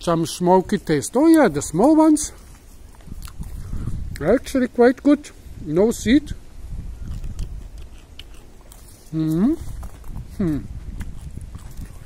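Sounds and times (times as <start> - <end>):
person chewing with mouth closed: 2.3 - 4.3, 6.8 - 12.0
faint mouth clicks: 2.4 - 4.3, 7.0 - 12.0.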